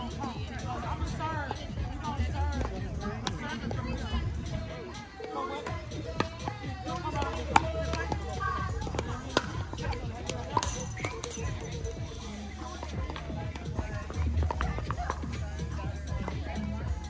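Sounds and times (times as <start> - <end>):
background music: 0.0 - 17.0
people's voices: 0.0 - 17.0.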